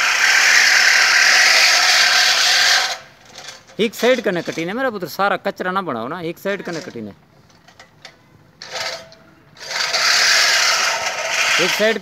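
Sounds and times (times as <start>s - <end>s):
reel mower blades whirring: 0.0s - 4.7s, 8.6s - 12.0s.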